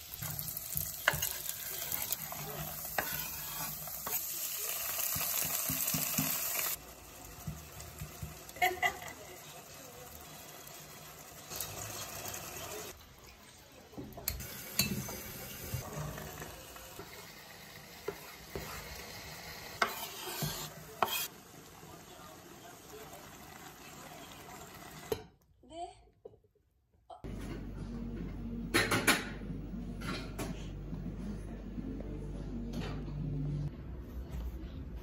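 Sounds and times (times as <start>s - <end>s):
food sizzling in saucepan: 0.0s - 25.3s
spoon stirring: 0.2s - 4.4s, 19.8s - 21.3s.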